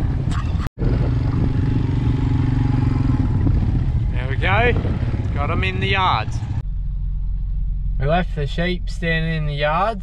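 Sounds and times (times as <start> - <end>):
vehicle engine running at low revs: 0.0 - 10.0.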